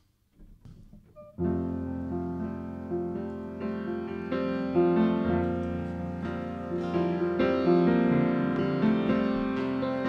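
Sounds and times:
piano and keyboard chord: 0:01.2 - 0:10.0.

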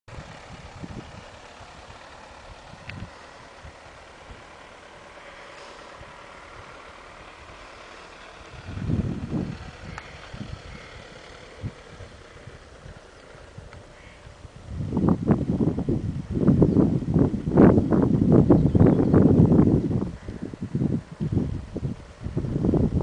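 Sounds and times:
outdoor background noise: 0:00.1 - 0:23.0
low rumbles and thumps: 0:08.4 - 0:23.0.

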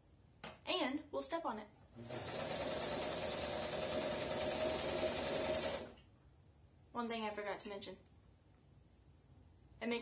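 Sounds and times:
sewing machine running: 0:02.0 - 0:06.0.

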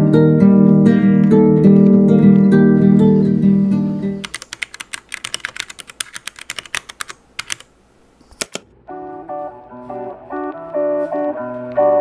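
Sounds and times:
computer keyboard typing: 0:04.2 - 0:07.7, 0:08.3 - 0:08.6.

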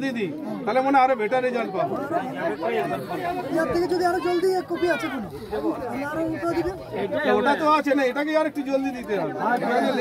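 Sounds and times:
overlapping conversational voices: 0:00.0 - 0:10.0.

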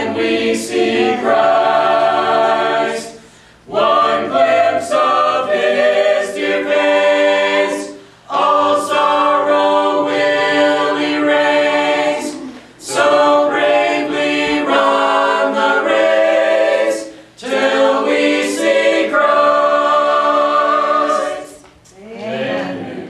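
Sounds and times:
choir singing in harmony: 0:00.0 - 0:23.0
singers breathing: 0:03.1 - 0:03.7, 0:07.9 - 0:08.3, 0:12.3 - 0:12.8, 0:17.0 - 0:17.4.

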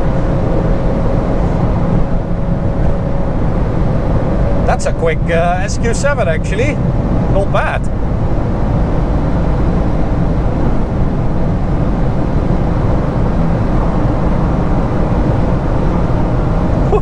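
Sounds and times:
car engine droning under load: 0:00.0 - 0:17.0
wind rush: 0:00.0 - 0:17.0.

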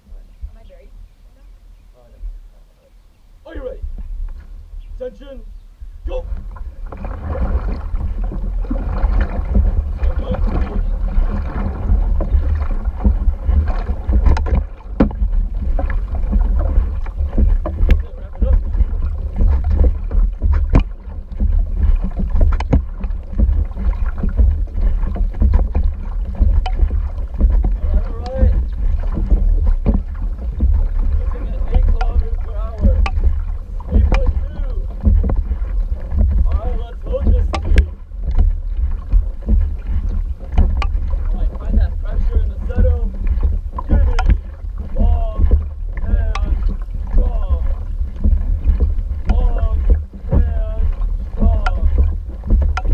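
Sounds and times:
paddle splashes and knocks: 0:00.0 - 0:52.9
wind rumble on microphone: 0:00.0 - 0:52.9.

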